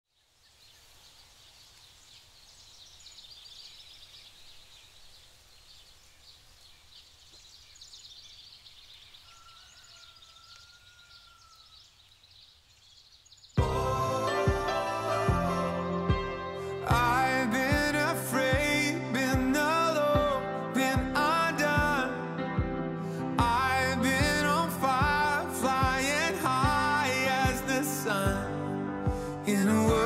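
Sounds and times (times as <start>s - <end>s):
small birds chirping: 0.1s - 13.8s
music: 13.6s - 30.0s.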